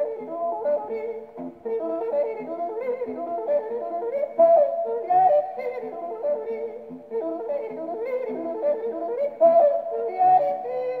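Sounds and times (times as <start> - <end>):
guitar accompaniment: 0.0 - 11.0
man yodeling: 0.0 - 11.0.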